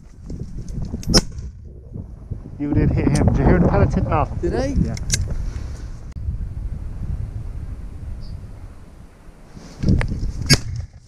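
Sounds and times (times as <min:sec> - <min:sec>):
microphone handling noise: 0:00.0 - 0:06.2, 0:09.6 - 0:11.0
low wind rumble: 0:00.0 - 0:11.0.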